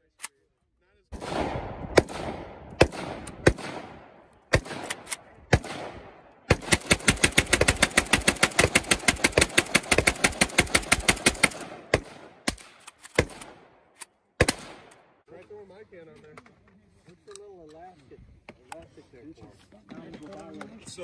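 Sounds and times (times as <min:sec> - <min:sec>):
rifle shots with echo: 0:01.1 - 0:15.2.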